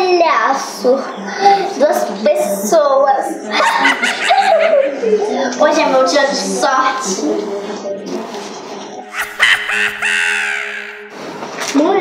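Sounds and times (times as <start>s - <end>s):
crow-like cawing: 9.1s - 11.2s.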